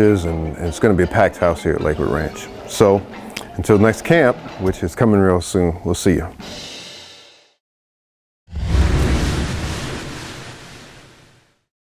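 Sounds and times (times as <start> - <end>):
deep rumbling boom: 8.5 - 11.2.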